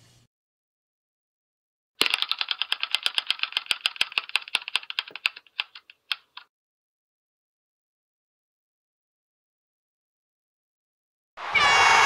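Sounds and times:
spinning wheel ticking clicks: 2.0s - 6.4s.

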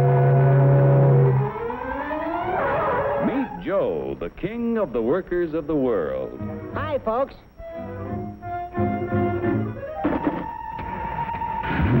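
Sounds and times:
steam whistle blowing: 0.0s - 3.5s.

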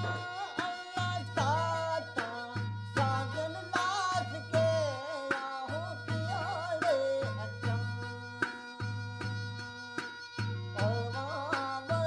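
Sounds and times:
drum strikes: 0.0s - 1.8s
wavering folk melody: 0.0s - 12.0s.

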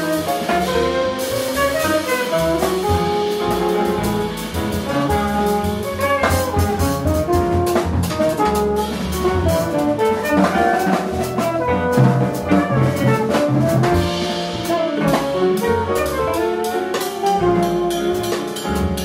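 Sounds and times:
double bass: 0.0s - 19.0s
drums and cymbals: 0.0s - 19.0s
piano: 0.0s - 19.0s
saxophone: 1.6s - 19.0s.

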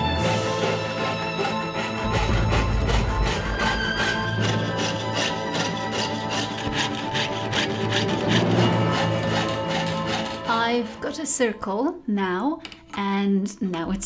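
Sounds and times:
saw cutting through metal sheet: 0.0s - 11.0s
background music: 0.0s - 14.0s.

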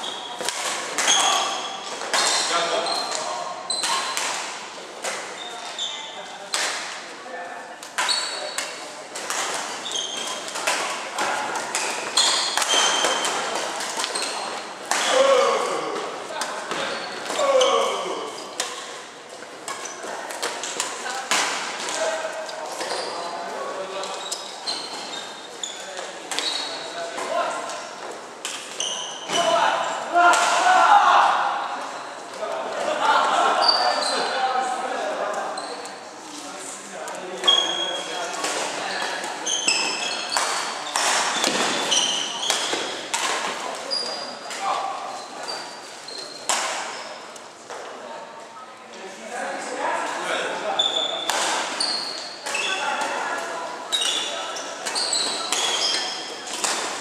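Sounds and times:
shoes squeaking on wooden floor: 1.0s - 4.1s, 8.0s - 8.6s, 9.7s - 10.6s, 11.2s - 15.8s, 16.6s - 20.8s, 24.0s - 27.0s, 37.4s - 43.1s, 43.8s - 47.3s, 50.7s - 53.0s, 53.9s - 57.0s
rackets hitting shuttlecocks: 7.8s - 15.2s, 38.4s - 43.8s, 54.8s - 57.0s.

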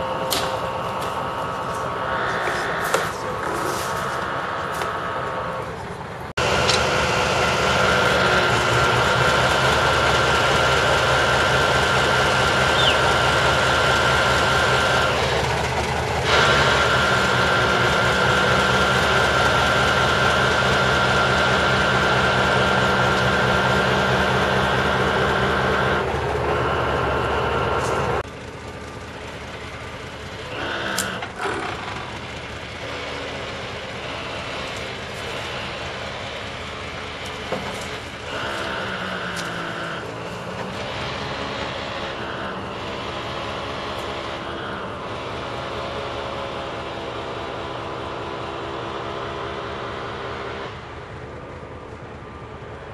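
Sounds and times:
hydraulic crane whine: 0.0s - 52.9s
truck engine running: 0.0s - 52.9s.

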